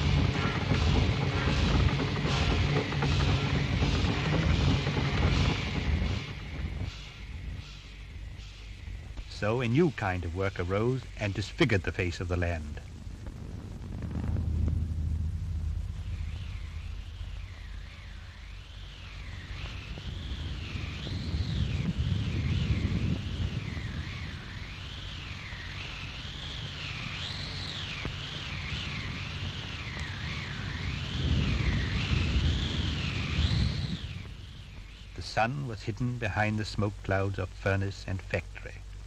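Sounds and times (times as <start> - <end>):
deep rumble: 0.0 - 39.0.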